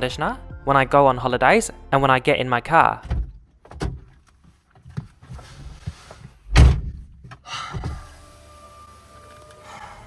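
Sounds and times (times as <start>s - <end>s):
car door shutting: 6.5s - 10.0s.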